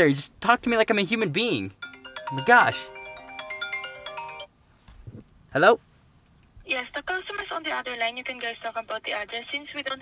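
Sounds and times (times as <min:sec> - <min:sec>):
electronic ringtone melody: 0:01.8 - 0:04.5.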